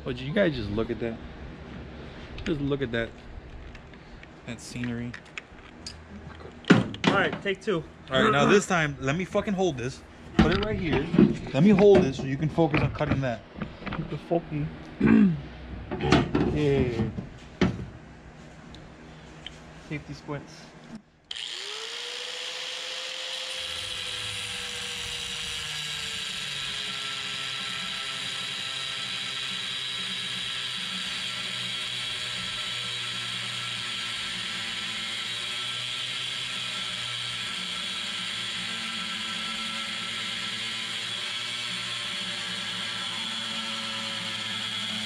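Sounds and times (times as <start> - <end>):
angle grinder cutting metal: 21.3 - 45.0.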